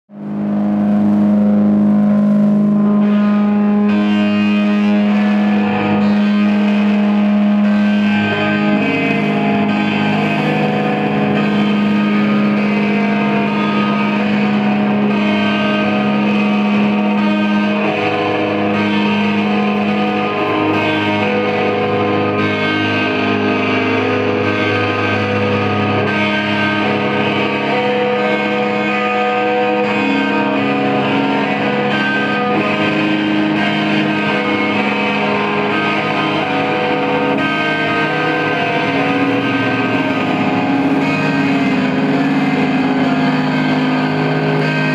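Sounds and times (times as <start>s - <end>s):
band playing distorted guitars: 0.1s - 44.9s.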